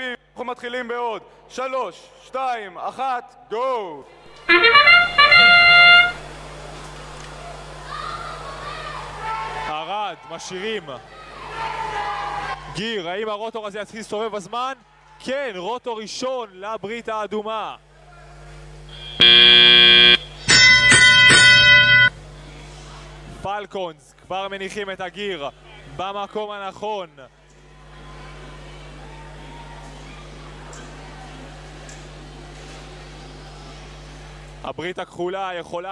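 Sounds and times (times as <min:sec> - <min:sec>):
trumpet-like fanfare: 0:04.3 - 0:06.4, 0:19.2 - 0:22.1
electronic buzzer tone: 0:04.4 - 0:06.3, 0:18.9 - 0:22.1.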